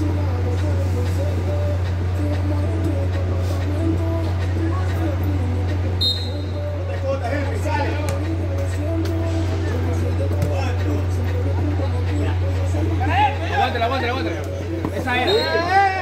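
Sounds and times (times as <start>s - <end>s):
faint music: 0.0s - 16.0s.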